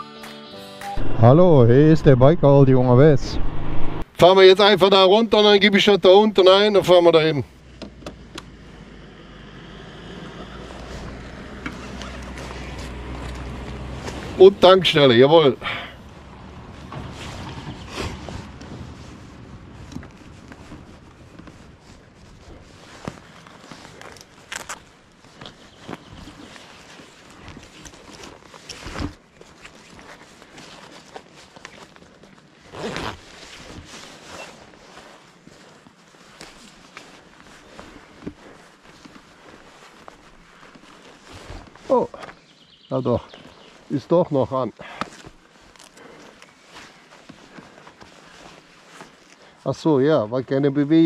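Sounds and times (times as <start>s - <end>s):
riding gear rustling: 10.0s - 51.0s.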